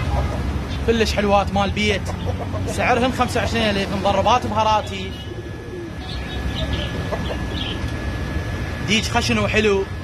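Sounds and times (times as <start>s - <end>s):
traffic rumble: 0.0s - 10.0s
faint bird calls: 4.8s - 8.0s.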